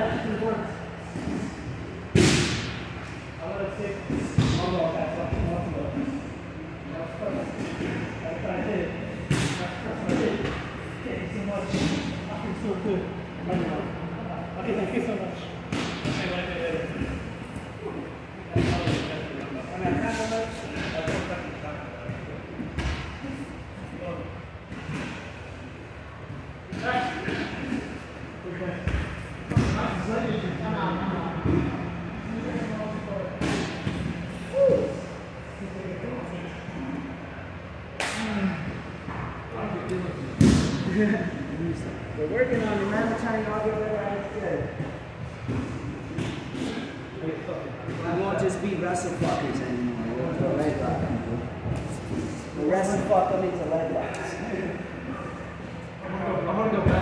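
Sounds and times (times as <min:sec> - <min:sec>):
indistinct echoing voices: 0:29.5 - 0:57.0.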